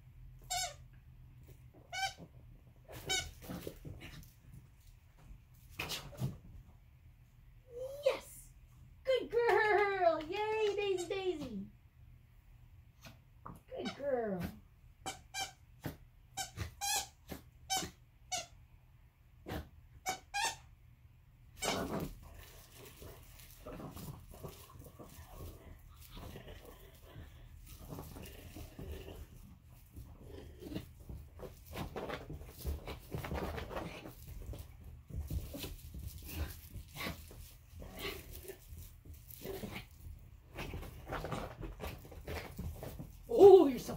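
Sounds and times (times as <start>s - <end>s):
squeaky dog toy squeaking: 0.4s - 0.9s, 1.8s - 2.3s, 15.0s - 15.7s, 16.4s - 18.6s, 20.0s - 20.7s
small dog noises: 35.3s - 43.9s.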